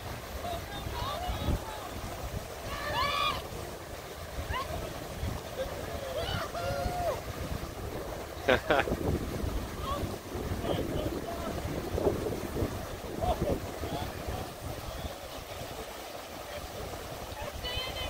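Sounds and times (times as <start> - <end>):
river rapids rushing: 0.0 - 18.0
wind buffeting microphone: 0.0 - 18.0.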